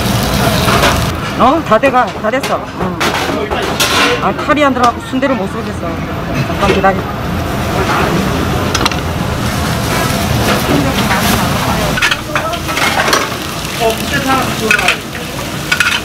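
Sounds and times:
food sizzling on griddle: 0.0s - 1.2s, 9.3s - 16.0s
dishes and utensils clicking: 14.6s - 15.0s, 15.7s - 16.0s.

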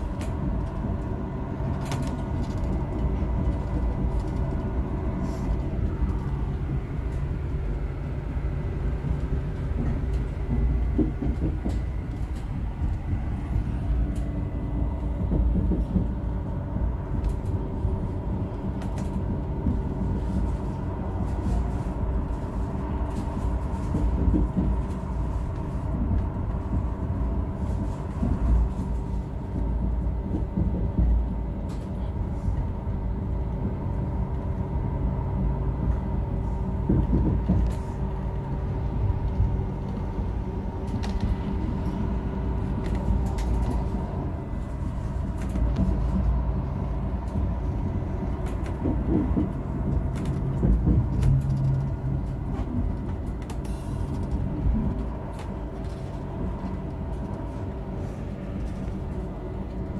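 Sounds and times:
wheels rumbling on rail: 0.0s - 59.9s.

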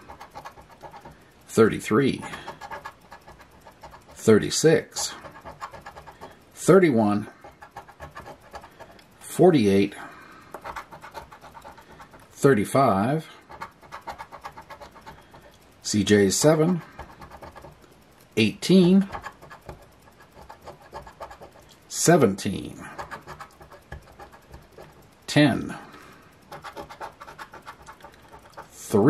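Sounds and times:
coin scratching lottery ticket: 0.0s - 9.8s, 10.5s - 17.8s, 18.4s - 25.1s, 26.5s - 29.0s.

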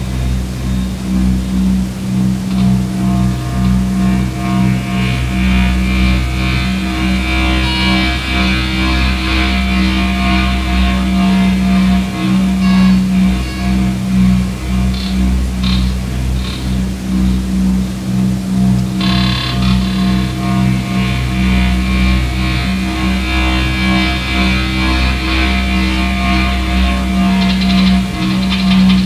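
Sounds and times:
deep bass: 0.0s - 29.0s
harsh buzzing high layer: 0.0s - 29.0s
pulsing electronic drone: 0.0s - 29.0s.

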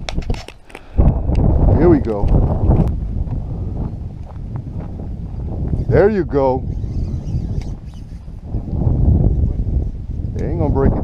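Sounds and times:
wind noise on microphone: 0.0s - 11.0s
faint footsteps on gravel: 2.3s - 5.8s.

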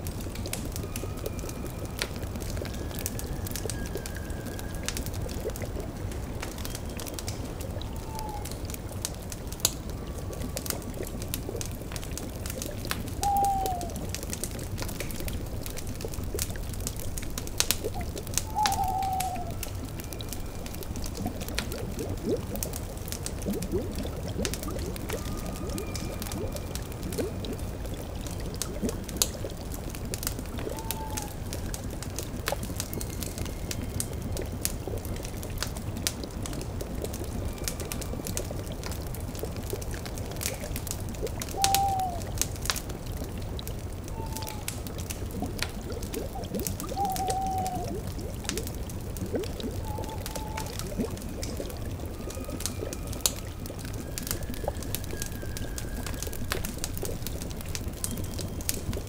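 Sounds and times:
cauldron bubbling: 0.0s - 59.0s
faint held music tones: 0.0s - 59.0s
wood fire crackling and popping: 0.0s - 59.0s
owl hoots: 7.9s - 8.6s, 13.2s - 14.0s, 18.4s - 20.2s, 30.6s - 31.4s, 41.5s - 42.3s, 44.1s - 44.7s, 46.3s - 48.0s, 49.7s - 50.9s.

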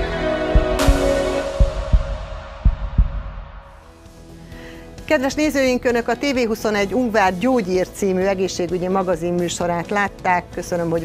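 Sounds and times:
television theme music: 0.0s - 10.4s
double bass thump: 0.5s - 3.7s.

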